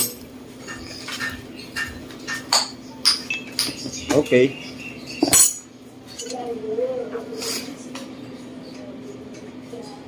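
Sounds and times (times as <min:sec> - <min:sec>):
metallic clatter with ring: 0:05.2 - 0:06.4.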